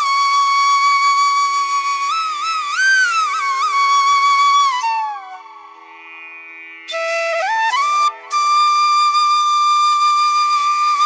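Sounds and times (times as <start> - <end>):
flute holding long note: 0.0 - 6.1, 6.8 - 11.0.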